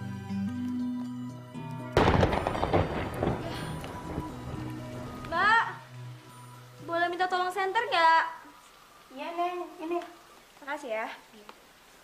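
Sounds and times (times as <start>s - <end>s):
soft background music: 0.0s - 11.1s
loud crash with rumbling tail: 2.0s - 5.2s.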